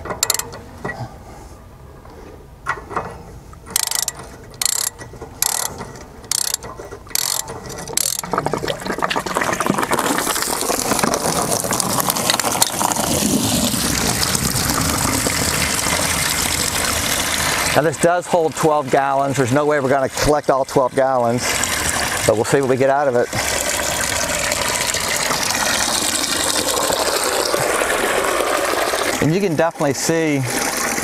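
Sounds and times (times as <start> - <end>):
socket ratchet clicking: 0.2 - 0.6, 3.7 - 8.2
water gushing out of tank: 7.6 - 31.0.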